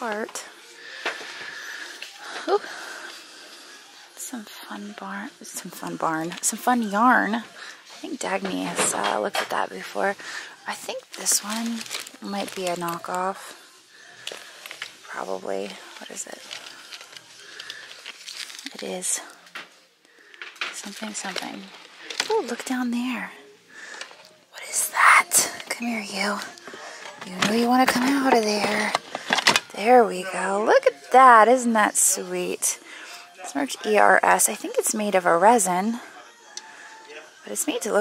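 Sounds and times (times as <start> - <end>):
crinkling and rustling: 7.3 - 24.4, 25.0 - 30.1.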